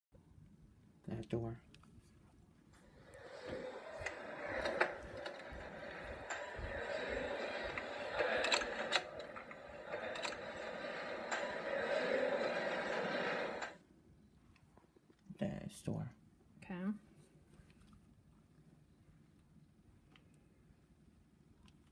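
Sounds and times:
dense noisy television din: 2.7s - 13.9s.

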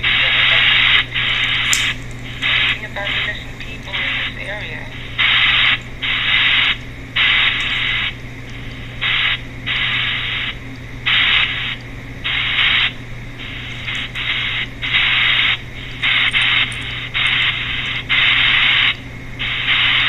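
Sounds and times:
chopped hiss bursts: 0.0s - 20.0s
low hum: 0.0s - 20.0s.

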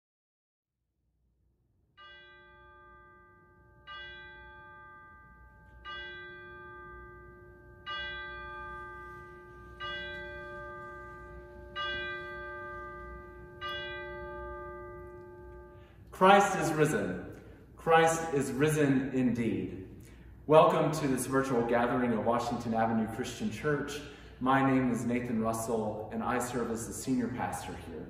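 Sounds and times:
bell tolling: 2.0s - 25.8s.

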